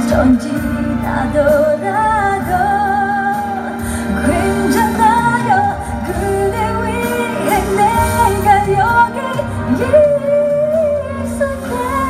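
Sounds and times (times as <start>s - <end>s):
woman singing a pop ballad: 0.0s - 12.0s.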